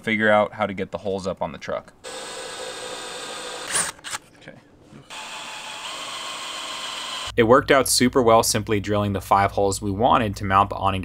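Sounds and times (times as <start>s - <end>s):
cordless drill boring through metal: 2.0s - 4.0s, 5.1s - 7.3s.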